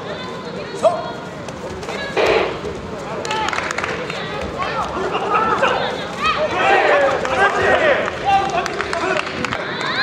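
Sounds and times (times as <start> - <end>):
people shouting: 4.6 - 8.7.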